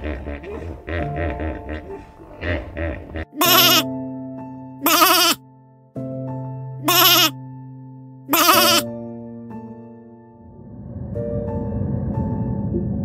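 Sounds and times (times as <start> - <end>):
soft piano music: 0.0 - 13.0
sheep bleating: 3.4 - 3.9, 4.8 - 5.4, 6.8 - 7.4, 8.3 - 8.9.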